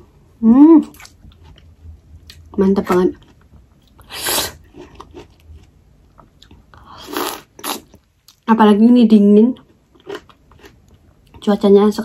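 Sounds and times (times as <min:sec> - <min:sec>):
person chewing wetly: 0:03.2 - 0:08.4.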